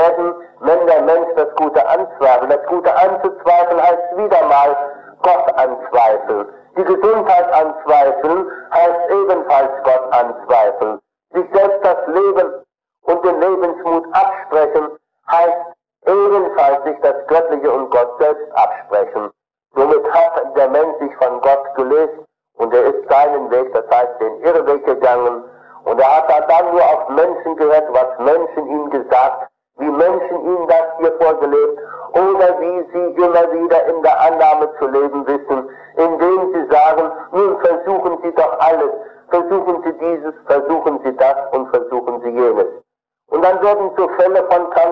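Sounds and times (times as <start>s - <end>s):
man lecturing: 0.0s - 44.9s.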